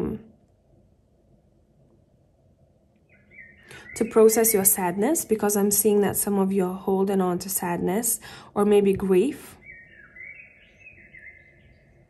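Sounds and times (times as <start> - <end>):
faint high-pitched bird chirping: 3.0 - 5.3, 9.2 - 12.0.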